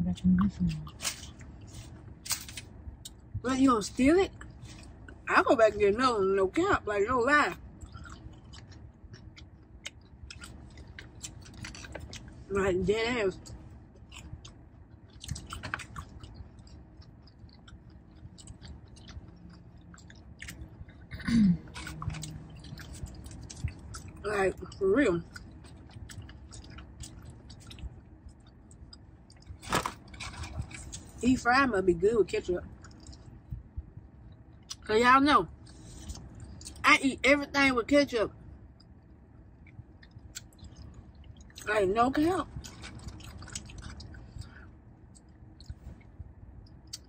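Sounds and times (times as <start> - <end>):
low steady hum: 0.0 - 47.0
person chewing food: 7.6 - 12.5, 13.4 - 31.2, 32.6 - 34.8, 35.6 - 36.8, 38.7 - 41.7, 42.4 - 47.0.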